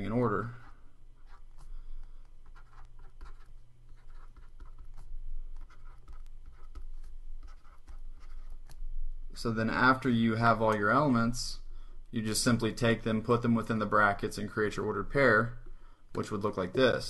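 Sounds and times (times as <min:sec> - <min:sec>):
stylus scratching and tapping: 0:00.0 - 0:09.5, 0:12.8 - 0:17.0
steady low hum: 0:00.0 - 0:17.0.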